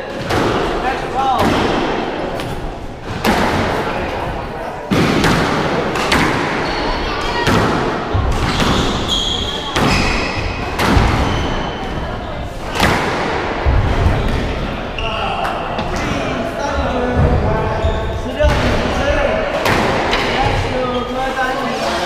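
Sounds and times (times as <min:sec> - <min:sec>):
voices: 0:00.0 - 0:22.0
squash ball cracking off walls: 0:04.9 - 0:06.6
shoe squeaks: 0:06.6 - 0:07.4, 0:08.4 - 0:12.0, 0:17.7 - 0:18.4.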